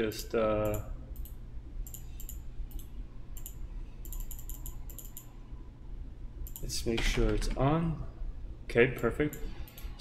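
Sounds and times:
mouse and keyboard clicking: 0:00.6 - 0:05.3.

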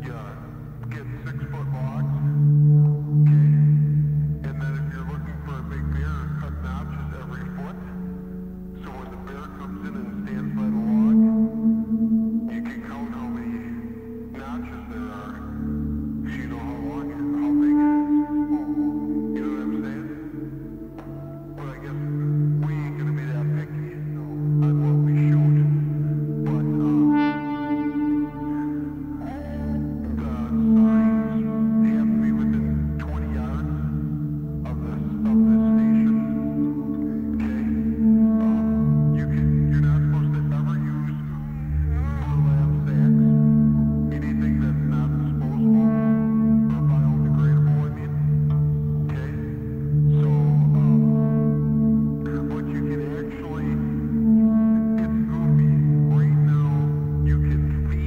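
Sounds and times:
low synthesizer drone: 0:00.0 - 0:58.0.

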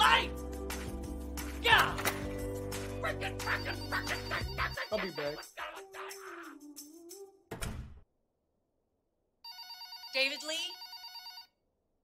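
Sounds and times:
telephone ringing: 0:03.4 - 0:05.4, 0:09.4 - 0:11.6.

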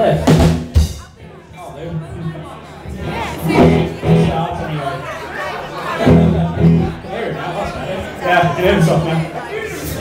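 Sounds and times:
crowd chatter: 0:00.0 - 0:10.0
stray band instrument sounds: 0:03.4 - 0:04.4, 0:06.0 - 0:07.0.

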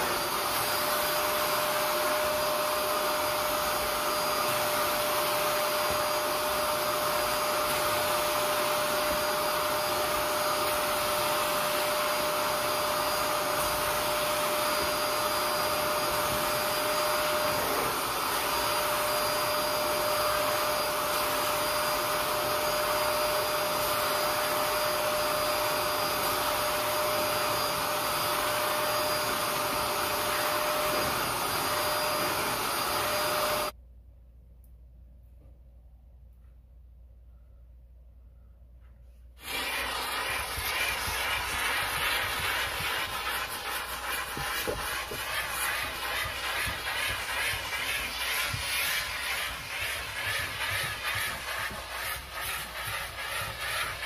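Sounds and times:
carpet extractor suction whine: 0:00.0 - 0:33.8, 0:39.4 - 0:54.0
hand tool drawn across carpet: 0:38.9 - 0:54.0.

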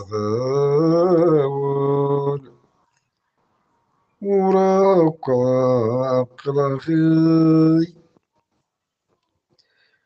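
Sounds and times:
man chanting: 0:00.0 - 0:02.5, 0:04.2 - 0:08.0
breaths: 0:09.5 - 0:10.0.

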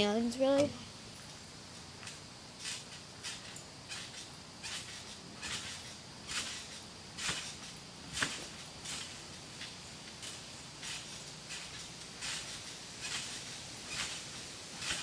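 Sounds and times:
distant trampoline bounces: 0:00.0 - 0:15.0.

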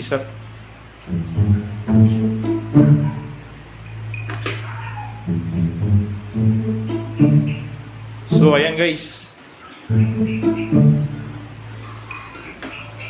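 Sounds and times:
steady low hum: 0:00.0 - 0:04.3, 0:05.2 - 0:09.0, 0:09.9 - 0:12.3
music from tv speakers: 0:01.0 - 0:04.4, 0:05.3 - 0:08.7, 0:09.9 - 0:13.0.

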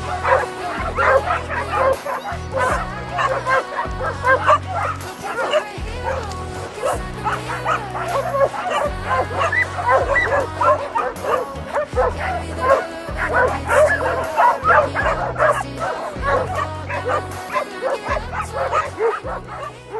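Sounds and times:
background music with bass line: 0:00.0 - 0:19.9
dogs barking and whining: 0:00.0 - 0:19.9.

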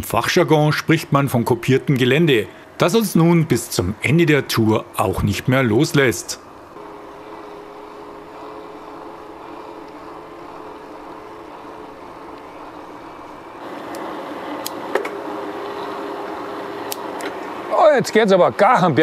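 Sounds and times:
electric bike motor hum: 0:00.4 - 0:19.0.

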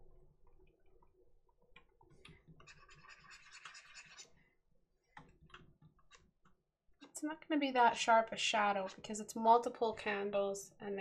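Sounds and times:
pen stylus scratching on tablet: 0:02.6 - 0:04.3.

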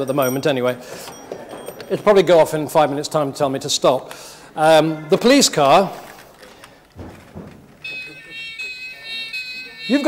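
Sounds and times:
soft knocks: 0:06.9 - 0:08.0
toy electronic siren: 0:07.8 - 0:10.0.

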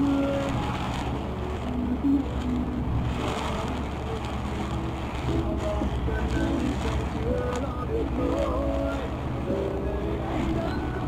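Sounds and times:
tyre noise on wet road: 0:00.0 - 0:11.0
vehicle engine drone: 0:00.0 - 0:11.0.

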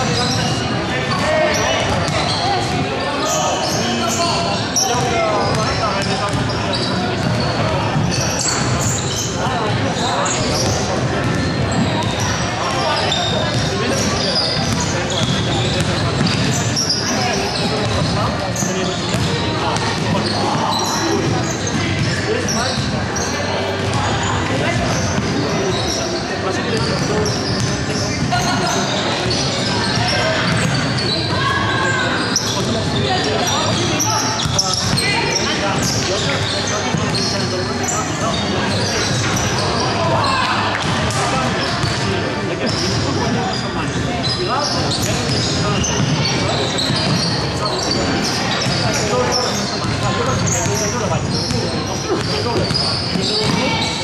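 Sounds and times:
echoing indistinct voices: 0:00.0 - 0:54.0.

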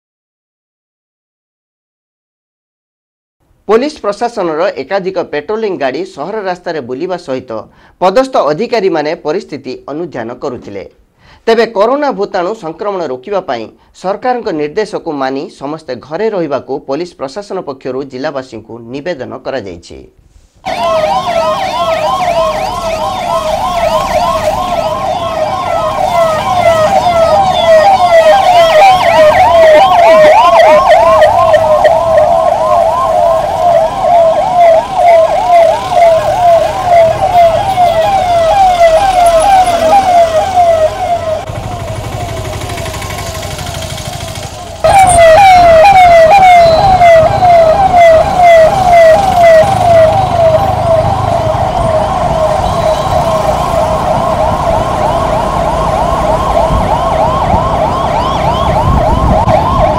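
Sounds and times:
police siren yelping: 0:20.6 - 0:59.9
low vehicle noise: 0:20.7 - 0:59.9.

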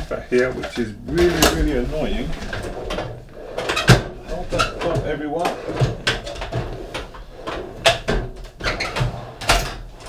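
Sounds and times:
rummaging through drawers: 0:00.0 - 0:10.0.

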